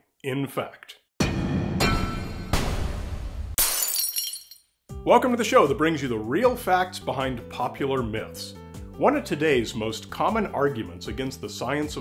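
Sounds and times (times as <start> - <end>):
crashing and shattering effects: 1.8 - 4.6.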